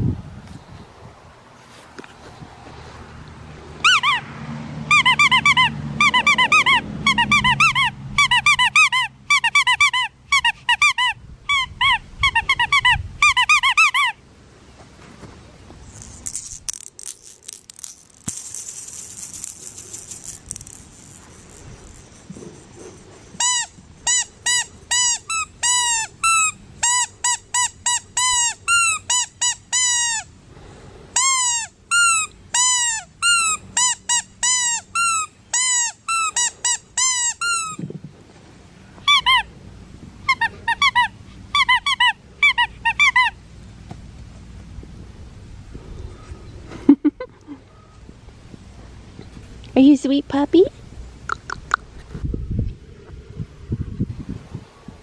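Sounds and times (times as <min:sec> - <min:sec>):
squeaky dog toy squeaking: 0:03.8 - 0:14.2, 0:15.9 - 0:22.4, 0:23.4 - 0:30.3, 0:31.2 - 0:37.8, 0:39.0 - 0:39.5, 0:40.2 - 0:43.4.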